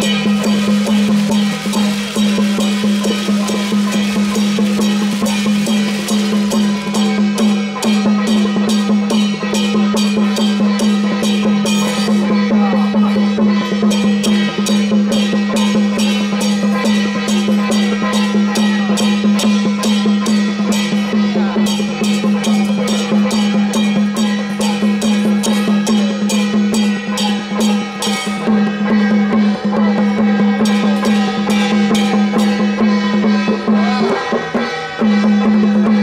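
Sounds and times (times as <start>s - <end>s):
drums and cymbals beat: 0.0s - 36.0s.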